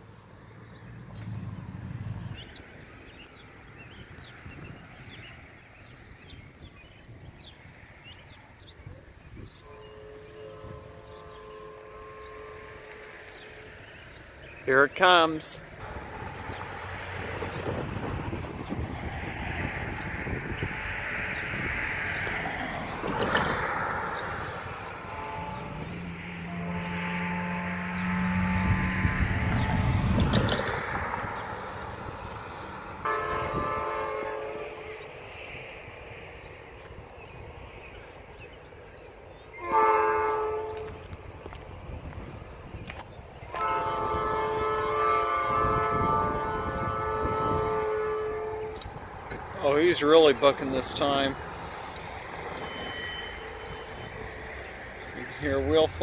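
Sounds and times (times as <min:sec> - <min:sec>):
locomotive air horn blasts: 0:09.6 - 0:13.8, 0:20.3 - 0:31.4, 0:33.0 - 0:35.0, 0:39.6 - 0:41.2, 0:43.5 - 0:49.0, 0:52.6 - 0:54.4.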